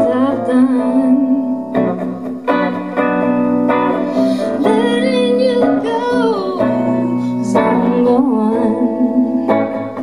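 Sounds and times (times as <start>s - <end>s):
guitar playing: 0.0s - 10.0s.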